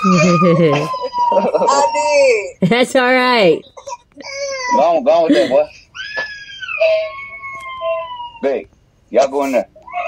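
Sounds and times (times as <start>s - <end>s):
child wailing: 0.0s - 2.5s, 6.0s - 8.6s.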